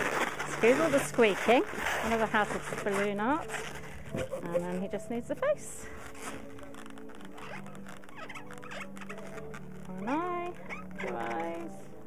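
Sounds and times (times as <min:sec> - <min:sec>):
balloons squeaking and rubbing: 0:00.0 - 0:12.0
quiet background music: 0:00.0 - 0:12.0.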